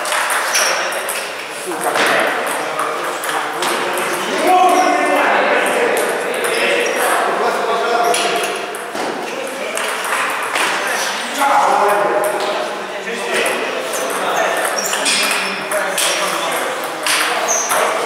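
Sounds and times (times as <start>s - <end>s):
voices talking in background: 0.0s - 18.0s.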